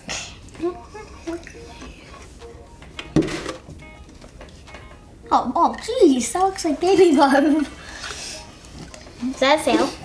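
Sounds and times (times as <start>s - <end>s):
plastic jug knocking on table: 3.1s - 3.7s.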